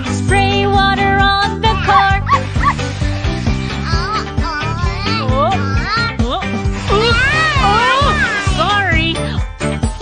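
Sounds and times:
children's song music: 0.0s - 10.0s
cartoon toddler crying: 1.7s - 2.8s, 3.7s - 6.2s, 6.9s - 8.6s.

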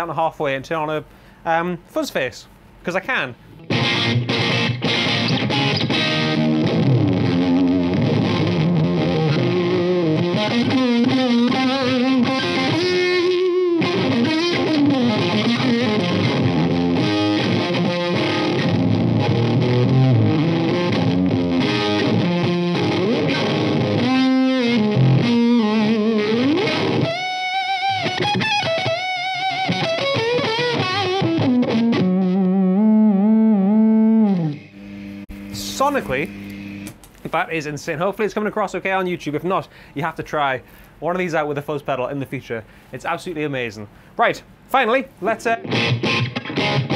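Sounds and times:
fuzzed electric guitar riffing: 3.4s - 37.0s, 45.1s - 46.9s
bent wavering guitar lead notes: 3.6s - 35.2s, 45.6s - 46.9s.

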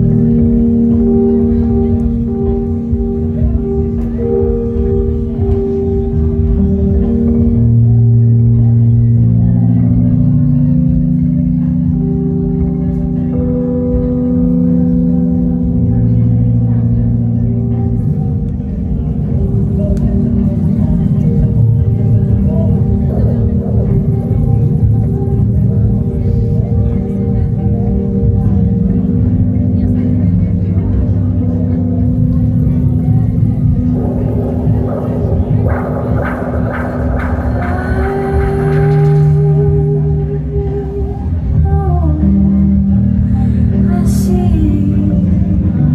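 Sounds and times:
electronic keyboard chords: 0.0s - 45.9s.

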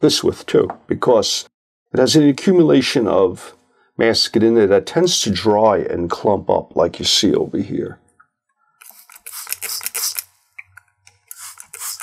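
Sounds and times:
squeeze bottle squirting liquid: 8.8s - 10.3s, 11.2s - 12.0s.

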